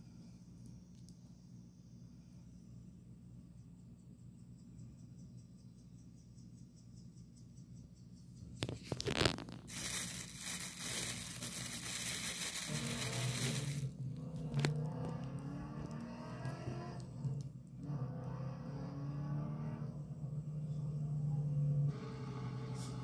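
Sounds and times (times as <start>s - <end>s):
rustling and scraping on fabric: 8.6s - 13.9s.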